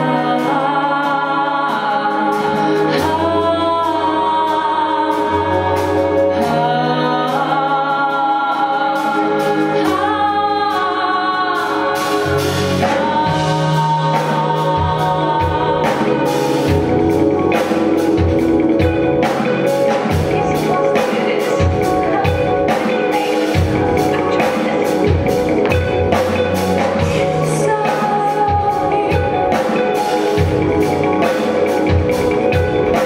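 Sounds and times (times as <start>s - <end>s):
vocals holding long notes: 0.0s - 33.0s
low bass line: 12.0s - 23.0s, 23.6s - 27.8s.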